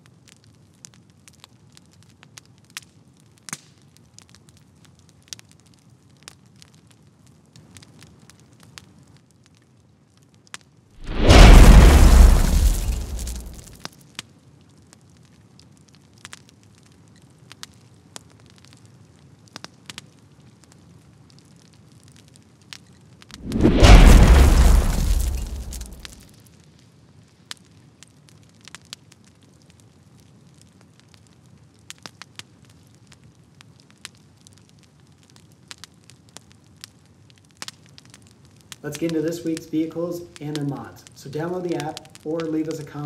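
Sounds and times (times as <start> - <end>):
faint scattered crackles: 0.0 - 43.0
rushing whoosh: 11.0 - 13.6, 23.4 - 26.1
deep boom: 11.0 - 13.7, 23.4 - 26.2.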